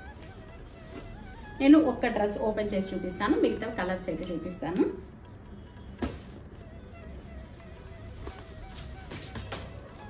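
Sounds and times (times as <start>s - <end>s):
fabric and packaging rustling: 0.0s - 1.6s, 7.2s - 10.0s
quiet background music: 0.0s - 10.0s.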